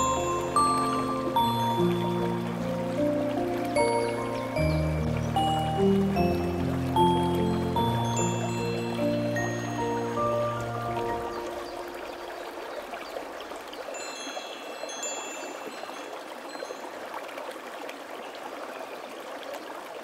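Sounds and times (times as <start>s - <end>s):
high chime tones: 0.0s - 2.2s
gentle melody with bass notes: 0.0s - 12.3s
water trickling: 0.0s - 20.0s.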